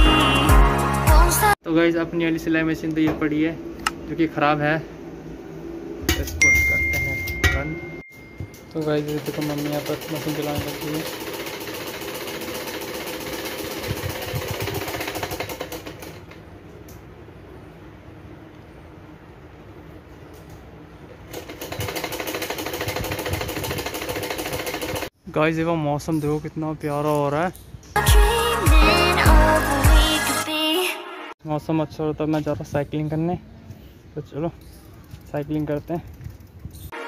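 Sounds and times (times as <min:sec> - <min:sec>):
sewing machine clattering: 0:08.7 - 0:16.4, 0:21.3 - 0:25.1.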